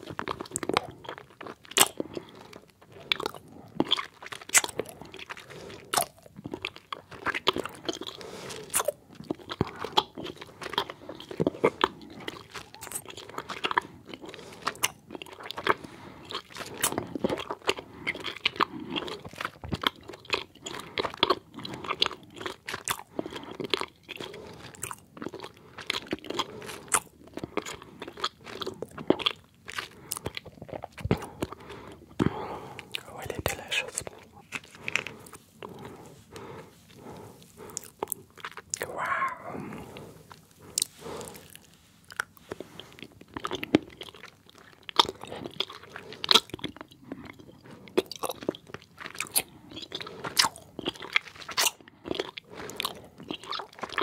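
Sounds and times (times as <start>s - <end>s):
chewing gummy candies: 0.0s - 54.0s.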